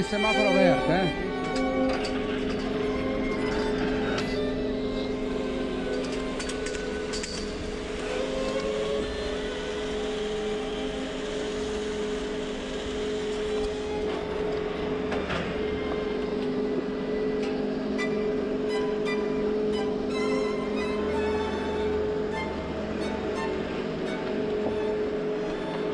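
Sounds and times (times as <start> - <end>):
ski lift machinery humming: 0.0 - 25.9.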